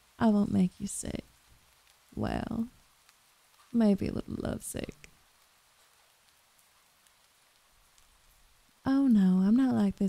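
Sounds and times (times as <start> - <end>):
faint even hiss: 0.0 - 10.0.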